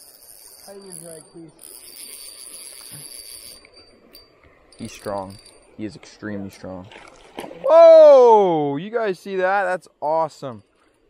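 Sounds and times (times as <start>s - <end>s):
high insect chirring: 0.0s - 6.1s.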